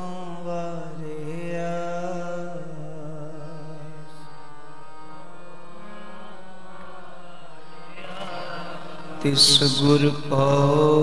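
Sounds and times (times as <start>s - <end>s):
harmonium holding steady notes: 0.0s - 11.0s
person singing: 7.6s - 11.0s.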